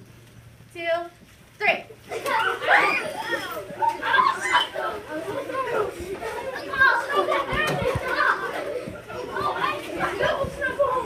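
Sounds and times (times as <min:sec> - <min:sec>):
children talking and calling out: 0:01.9 - 0:11.0.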